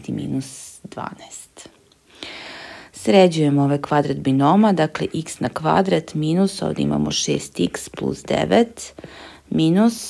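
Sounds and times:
breath in: 2.1s - 3.0s, 9.0s - 9.5s
person speaking: 3.0s - 10.0s.

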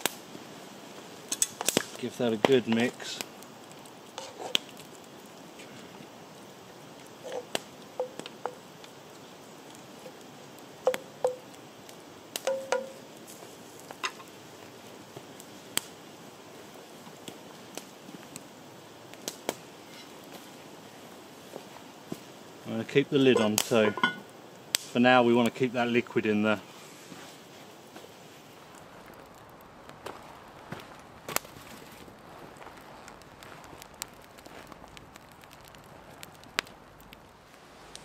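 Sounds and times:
campfire crackling and popping: 0.0s - 38.0s
faint steady hiss: 0.0s - 38.0s.

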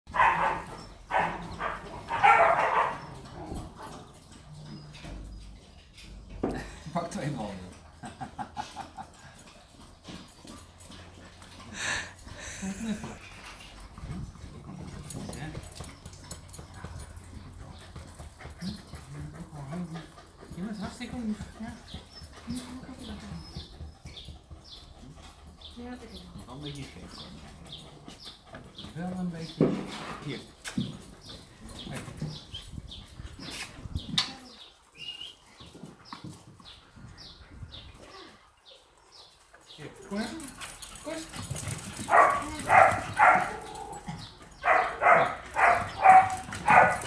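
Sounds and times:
dog barking: 0.1s - 3.1s, 42.1s - 43.8s, 44.6s - 47.0s.

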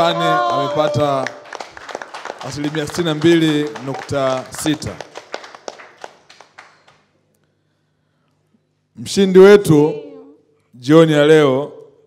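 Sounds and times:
audience clapping: 0.0s - 7.2s.

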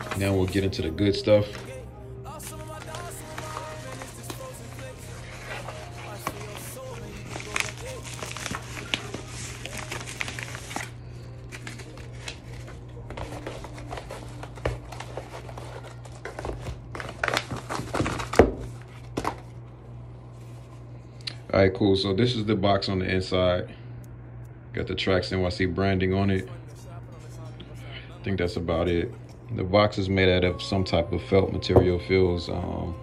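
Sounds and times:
padded mailer crinkling: 0.0s - 1.8s, 2.4s - 19.6s
music: 0.0s - 16.7s, 26.4s - 33.0s.

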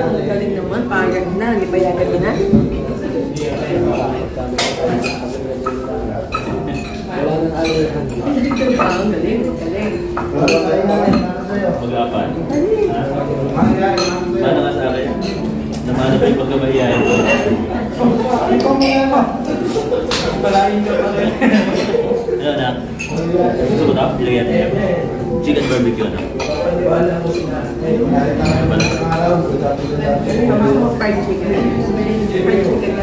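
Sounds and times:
background music: 0.0s - 33.0s
murmur of conversation: 0.0s - 33.0s
people chattering: 0.0s - 33.0s
plates and cutlery clinking: 1.0s - 33.0s.

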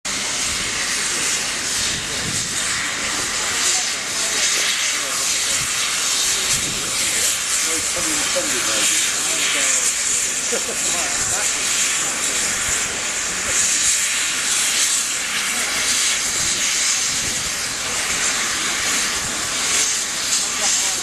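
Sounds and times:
steam locomotive hissing: 0.1s - 21.0s.

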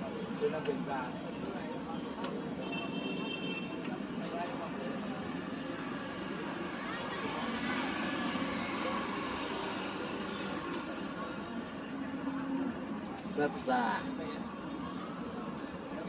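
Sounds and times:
hubbub of many voices: 0.0s - 16.0s.

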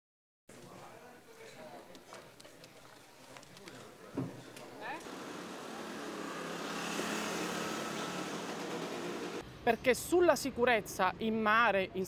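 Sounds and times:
vehicle engine: 5.0s - 9.4s.

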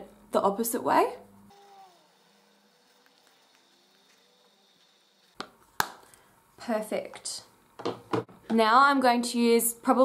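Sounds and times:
woman's voice: 0.0s - 1.2s, 6.6s - 7.5s, 8.5s - 10.0s.

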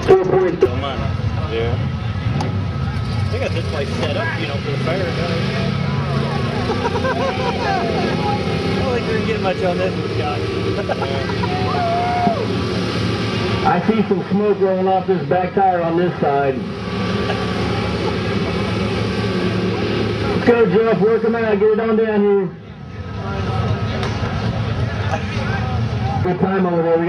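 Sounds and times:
engine running hard: 0.0s - 27.0s
faint voices: 0.0s - 27.0s
tires spinning in mud: 2.2s - 22.4s
crowd shout: 5.9s - 8.8s, 11.2s - 12.6s.

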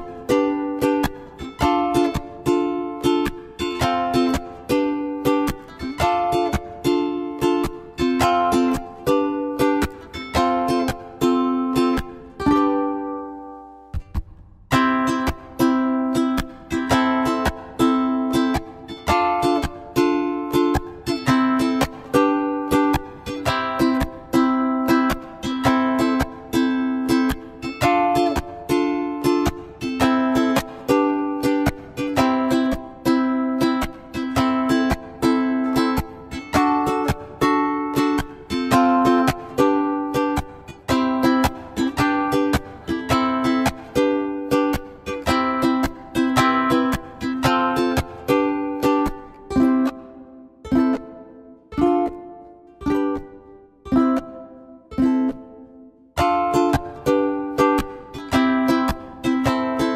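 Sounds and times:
plucked string instrument strumming: 0.0s - 59.9s.

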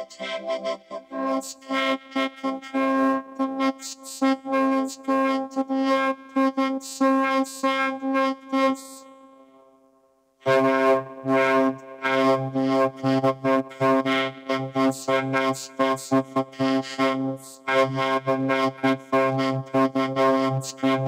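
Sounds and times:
robotic vocoded speech: 0.0s - 1.7s.

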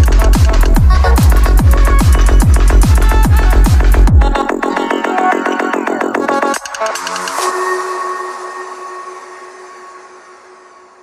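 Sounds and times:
electronic dance music held tone: 0.0s - 11.0s.

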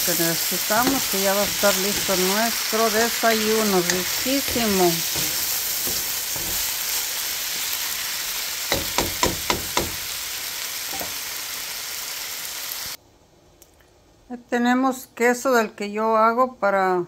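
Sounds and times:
food sizzling in a pan: 0.0s - 13.0s.

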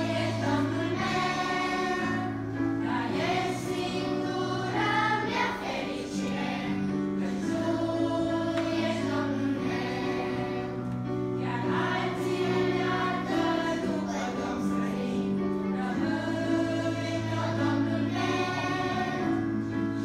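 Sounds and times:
children's choir singing in unison: 0.0s - 20.0s.

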